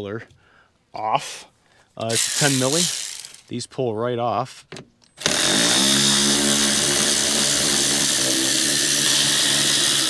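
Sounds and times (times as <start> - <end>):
cordless power tool running: 2.1 - 3.4, 5.2 - 10.0.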